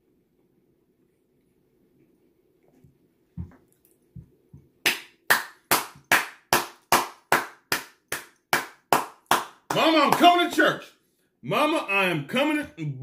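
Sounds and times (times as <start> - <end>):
person clapping hands: 4.8 - 10.6
man's voice: 9.7 - 13.0.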